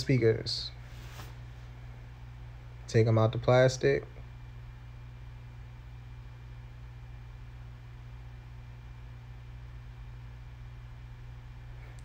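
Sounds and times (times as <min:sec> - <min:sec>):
low room hum with faint hiss: 0:00.0 - 0:12.0.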